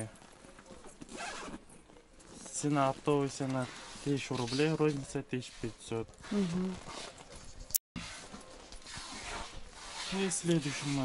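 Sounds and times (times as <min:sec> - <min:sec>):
handbag rustling: 0:00.2 - 0:04.8.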